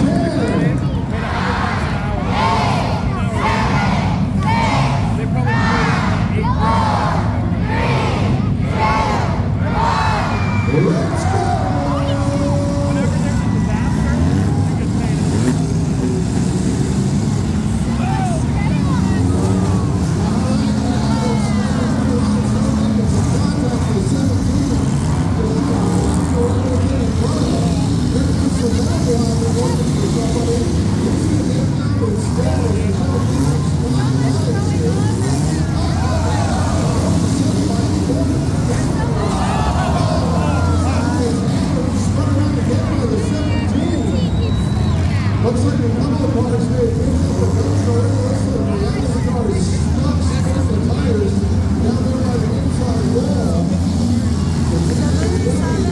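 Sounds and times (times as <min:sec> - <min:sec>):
car engines revving: 0:00.0 - 0:55.9
crowd voices: 0:00.0 - 0:55.9.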